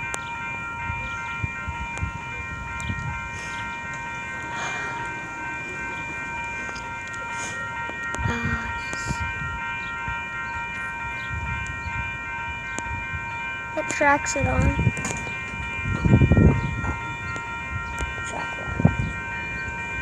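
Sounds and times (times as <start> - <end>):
road traffic noise: 0.0 - 20.0.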